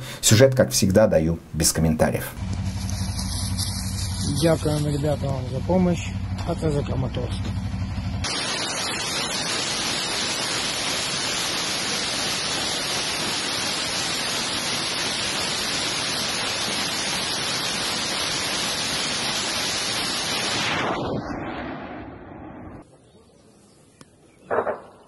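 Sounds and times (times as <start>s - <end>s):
rushing roar of rockets firing: 8.2s - 15.1s, 20.2s - 22.8s.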